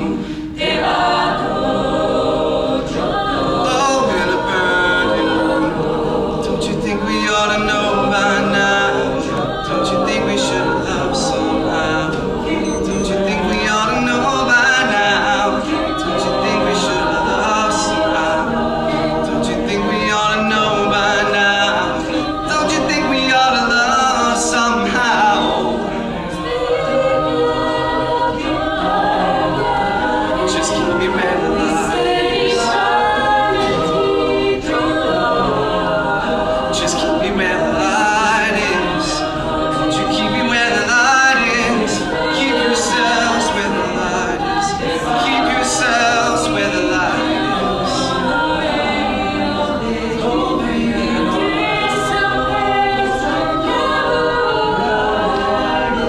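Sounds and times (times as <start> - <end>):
a cappella group singing: 0.0 - 56.0.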